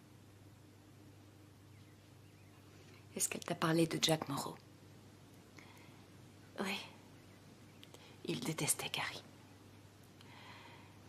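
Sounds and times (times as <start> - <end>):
woman speaking softly: 3.1 - 4.6, 6.6 - 7.0, 8.2 - 9.3.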